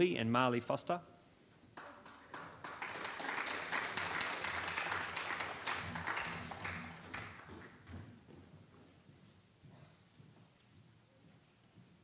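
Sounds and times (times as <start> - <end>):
audience applauding: 1.8 - 7.9.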